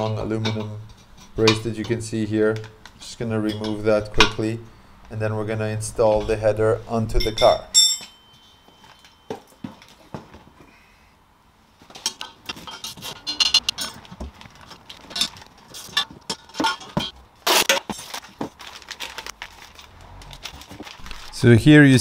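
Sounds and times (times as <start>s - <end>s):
metal clinks and taps: 7.2s - 10.3s
plastic bags rustling: 12.8s - 22.0s.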